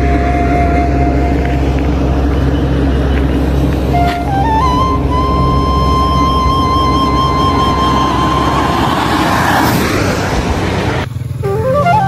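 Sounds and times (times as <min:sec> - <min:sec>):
held melody note: 0:00.0 - 0:09.3, 0:11.4 - 0:12.0
low bass pulse: 0:00.0 - 0:12.0
rising noise swell: 0:00.0 - 0:12.0.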